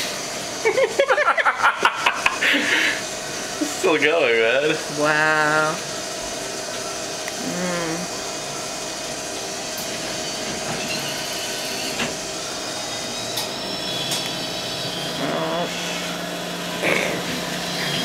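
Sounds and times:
vending machine whirring hum: 0.0 - 18.0.

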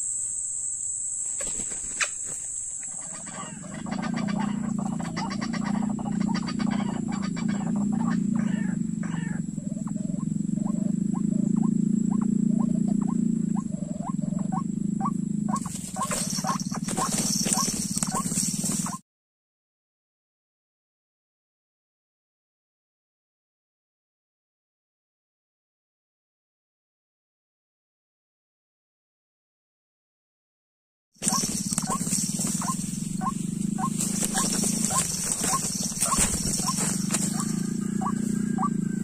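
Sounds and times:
high insect whine: 0.0 - 19.0, 31.2 - 39.0
rustling and wing-flapping: 1.2 - 7.9, 15.5 - 19.0, 31.2 - 39.0
bird croaking and grunting: 2.8 - 19.0, 31.2 - 39.0.

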